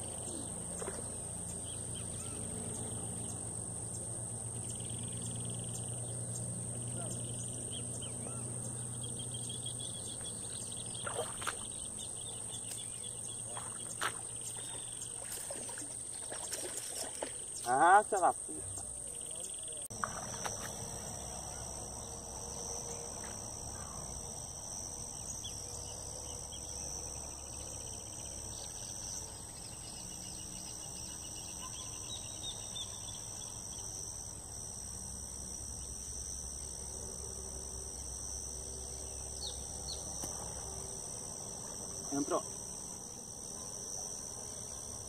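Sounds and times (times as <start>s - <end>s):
shrill insect chorus: 0.0s - 45.0s.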